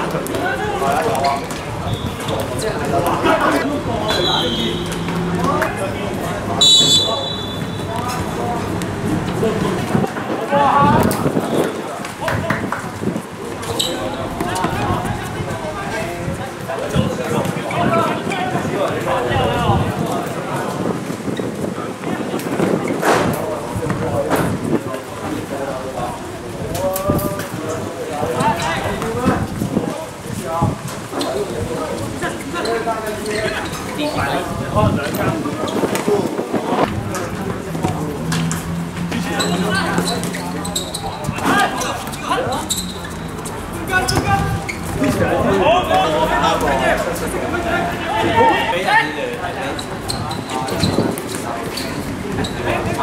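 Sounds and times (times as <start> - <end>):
players calling out: 0.0 - 20.5, 31.1 - 53.0.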